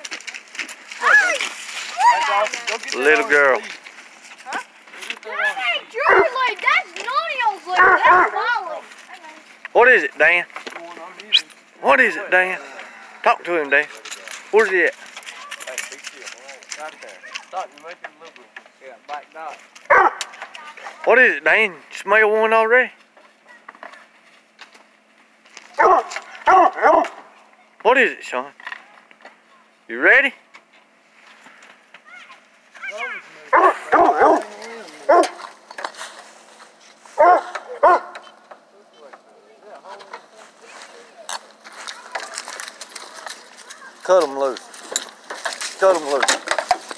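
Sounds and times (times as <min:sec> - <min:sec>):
hounds whining and yipping: 0:05.4 - 0:06.4, 0:07.7 - 0:08.6, 0:19.9 - 0:20.4, 0:25.8 - 0:27.2, 0:32.9 - 0:35.5, 0:37.1 - 0:38.4.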